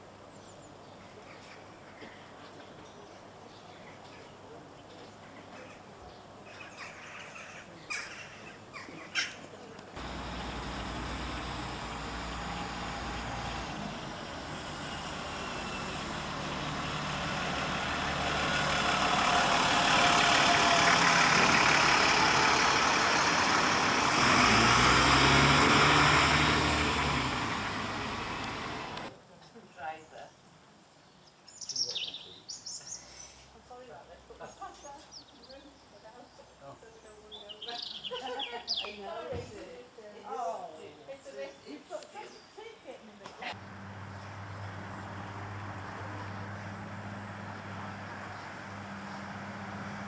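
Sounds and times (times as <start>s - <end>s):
diesel bus engine running: 10.0s - 29.1s, 43.5s - 50.0s.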